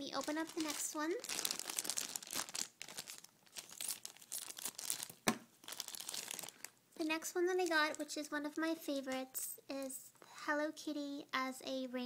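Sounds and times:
crinkly wrapping crumpled and torn: 0.0 - 8.5.

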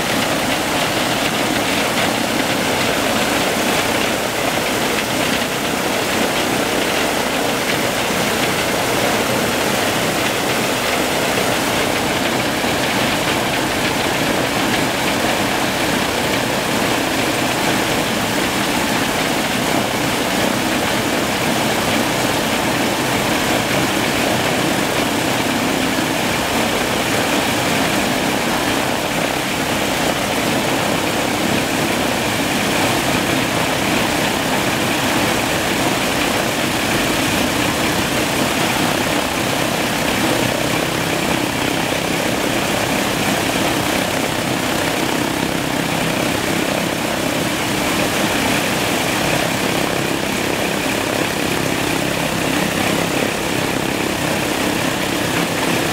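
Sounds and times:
radial piston engine running: 0.0 - 55.9.

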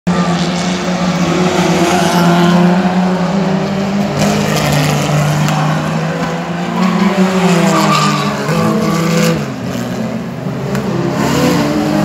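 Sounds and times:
race car engines: 0.0 - 12.0.

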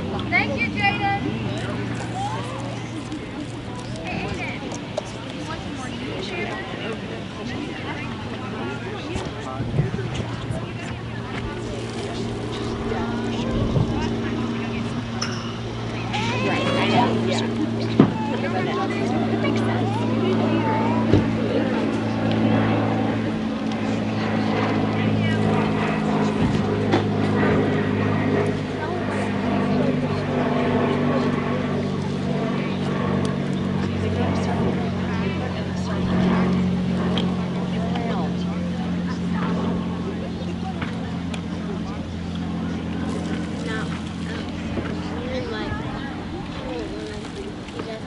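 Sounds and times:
faint voices talking: 0.0 - 48.0
low motor hum: 0.0 - 48.0.

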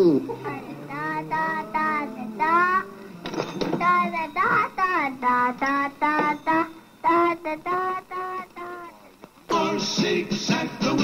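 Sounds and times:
high-pitched singing voice: 0.4 - 3.1, 3.7 - 11.0.

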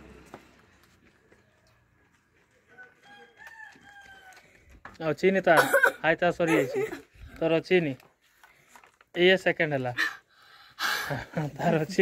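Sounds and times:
rooster crowing: 2.6 - 4.5.

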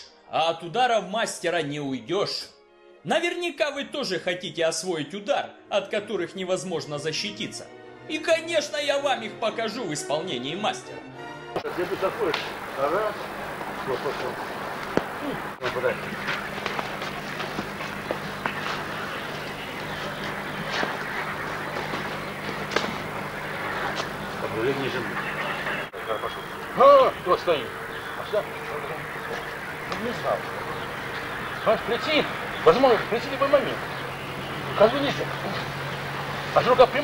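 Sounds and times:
indistinct men's voices: 11.6 - 37.0
tape hum and hiss: 11.6 - 37.0.

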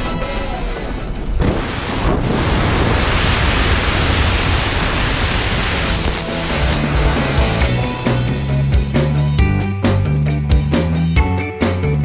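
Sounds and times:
wind buffeting microphone: 1.2 - 6.6.

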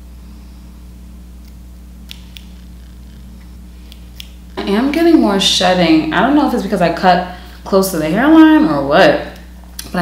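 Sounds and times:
steady low hum: 0.0 - 10.0
small scissors snipping: 1.4 - 2.6.

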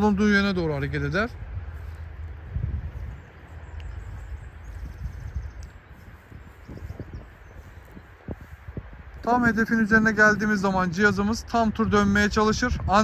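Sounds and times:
footsteps on grass: 0.0 - 11.4
low outdoor rumble: 0.0 - 13.0.

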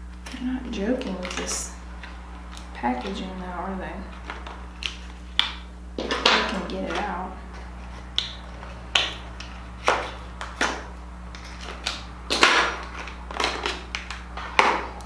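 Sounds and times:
makeup packaging clicks and taps: 7.9 - 14.9.

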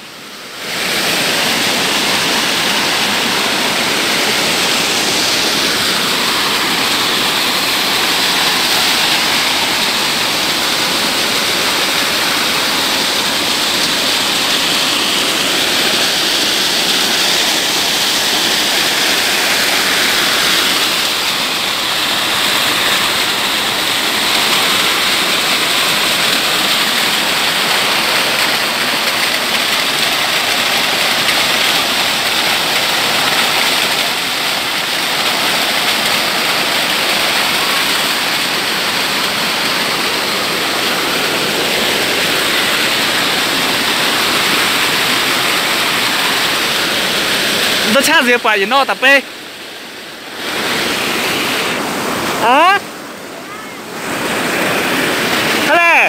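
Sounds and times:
stream rushing over rocks: 0.0 - 56.0.

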